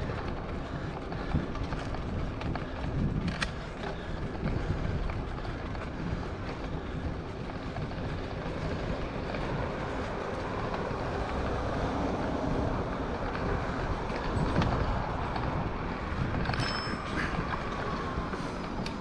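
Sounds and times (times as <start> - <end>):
bicycle tyres rolling on asphalt: 0.0 - 19.0
wind rush on microphone: 0.0 - 19.0.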